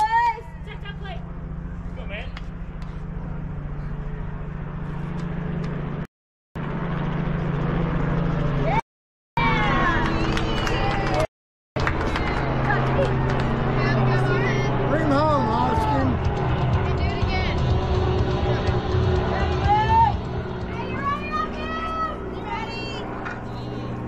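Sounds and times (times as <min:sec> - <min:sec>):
steady low hum: 0:00.0 - 0:08.6, 0:11.8 - 0:24.0.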